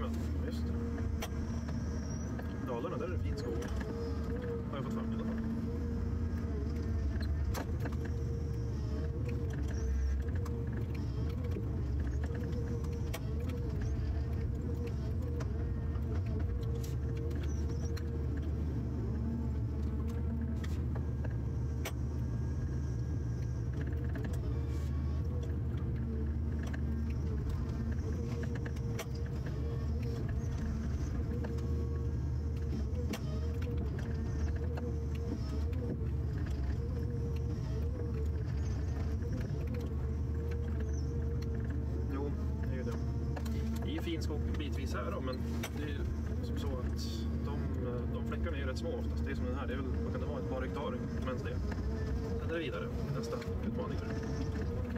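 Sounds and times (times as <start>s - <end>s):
diesel engine and hydraulics running: 0.0s - 54.9s.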